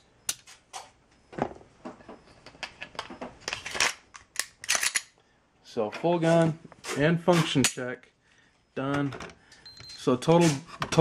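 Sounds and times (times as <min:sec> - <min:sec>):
pistol parts clicking: 0:02.7 - 0:05.2.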